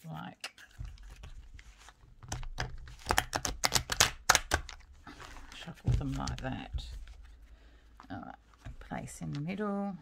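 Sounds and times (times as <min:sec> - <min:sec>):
cards being shuffled: 0:00.0 - 0:07.5.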